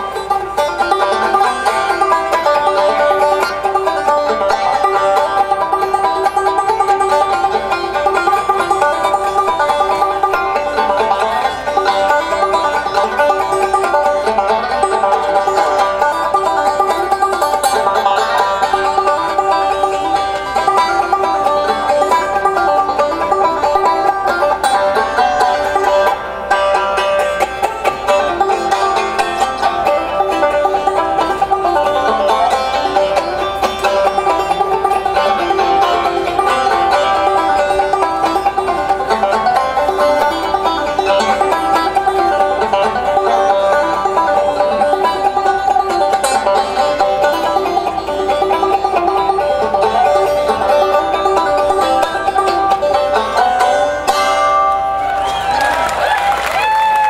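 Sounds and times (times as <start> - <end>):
banjo picking: 0.0 - 57.0.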